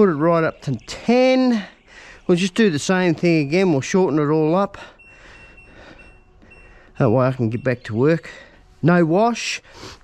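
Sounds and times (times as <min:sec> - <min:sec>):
washing machine button beeps: 0:04.9 - 0:08.2.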